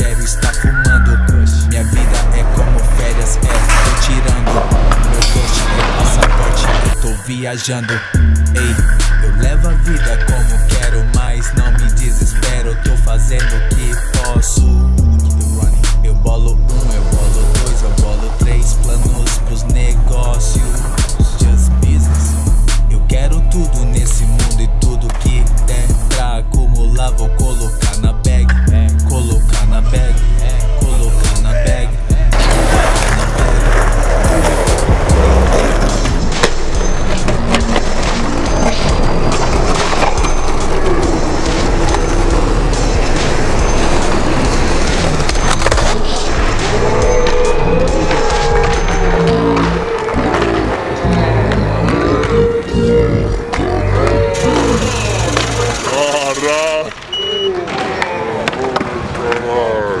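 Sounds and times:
skateboard wheels rolling on concrete: 0:00.0 - 0:07.3, 0:32.2 - 0:52.7, 0:54.2 - 1:00.0
hip-hop beat with bass: 0:00.0 - 0:57.6
skateboard clacks: 0:02.0 - 0:07.1, 0:32.3 - 0:46.6, 0:54.4 - 0:59.5
people shouting and chatting: 0:08.1 - 1:00.0.

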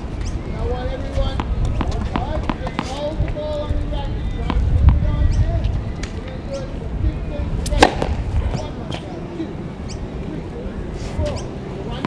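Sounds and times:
tennis racket striking ball: 0:07.6 - 0:08.2.

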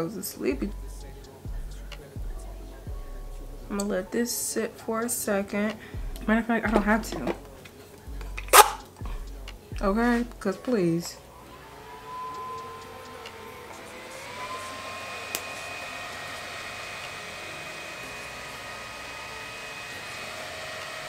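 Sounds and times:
small electric fan whine: 0:00.0 - 0:21.0.

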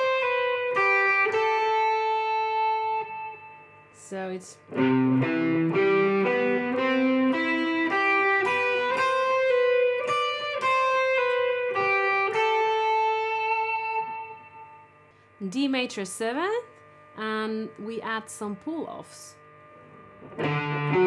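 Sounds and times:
electric guitar arpeggio: 0:00.0 - 0:03.5, 0:04.7 - 0:14.7, 0:20.0 - 0:21.0.

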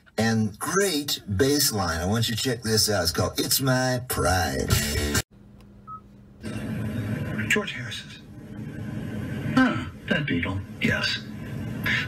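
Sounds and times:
low hum: 0:05.4 - 0:12.0
radio broadcast audio: 0:06.4 - 0:12.0.

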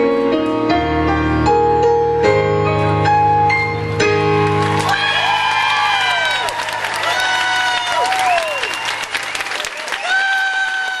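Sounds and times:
audience applauding and cheering: 0:04.4 - 0:11.0.

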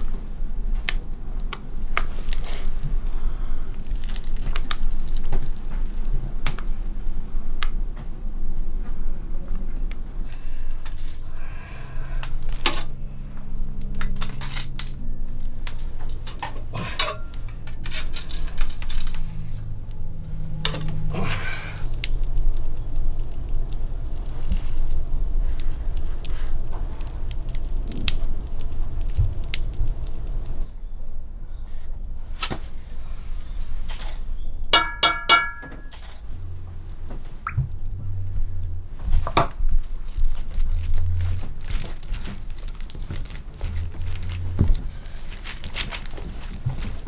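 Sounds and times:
low hum: 0:00.0 - 0:47.0
clinks of pots and utensils: 0:16.3 - 0:18.2, 0:34.8 - 0:36.0.

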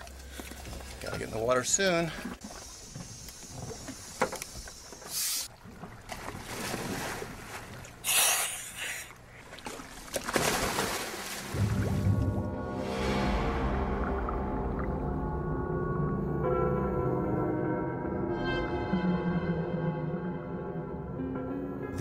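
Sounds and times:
rushing splashing water: 0:05.4 - 0:14.4.

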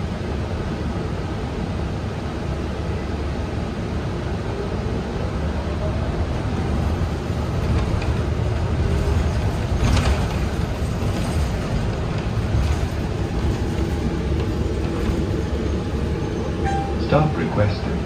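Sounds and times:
bus engine rumble: 0:00.0 - 0:18.0
road noise: 0:00.0 - 0:18.0.

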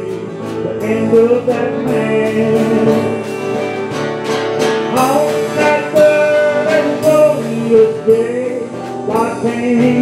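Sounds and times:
country band playing: 0:00.0 - 0:10.0.

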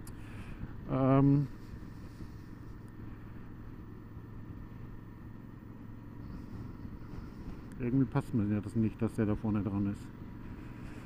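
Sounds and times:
motorcycle engine drone: 0:00.0 - 0:11.0
wind and road noise: 0:00.0 - 0:11.0.

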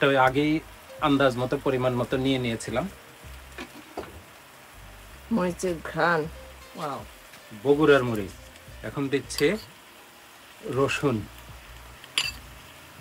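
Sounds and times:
man talking: 0:00.0 - 0:03.0, 0:06.8 - 0:09.7, 0:10.6 - 0:11.3
meat sizzling in a pot: 0:00.0 - 0:13.0.

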